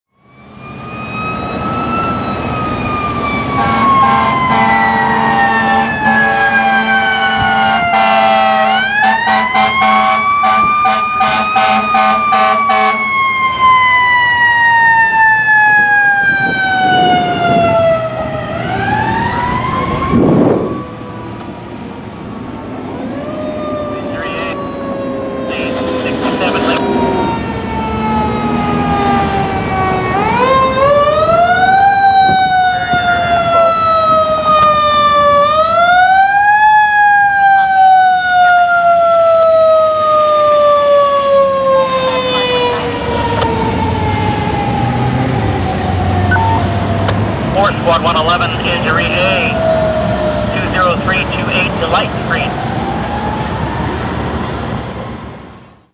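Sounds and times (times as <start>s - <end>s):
air horn blast: 3.6s - 13.0s.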